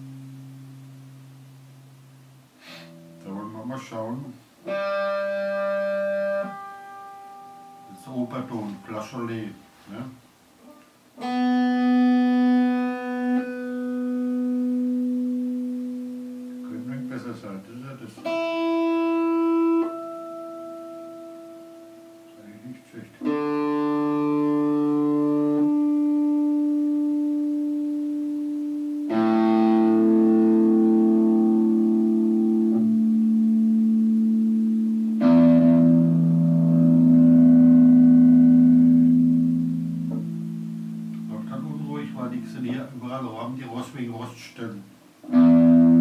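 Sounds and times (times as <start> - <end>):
electric guitar ringing notes: 0.0 - 44.2, 45.2 - 46.0.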